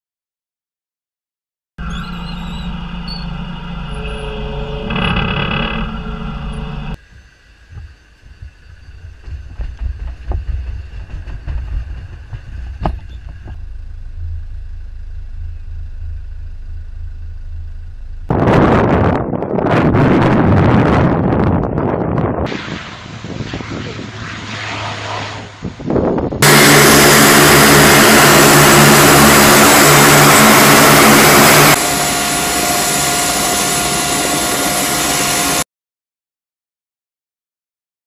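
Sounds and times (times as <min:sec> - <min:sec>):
forklift engine running: 0:01.8 - 0:07.0, 0:08.4 - 0:19.8, 0:26.4 - 0:35.6
steady whine: 0:01.8 - 0:35.6
turboprop plane landing: 0:01.8 - 0:35.6.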